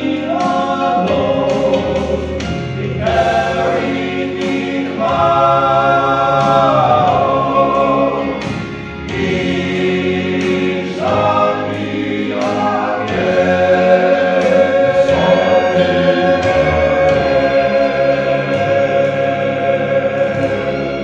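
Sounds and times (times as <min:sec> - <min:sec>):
male quartet singing in harmony: 0:00.0 - 0:21.0.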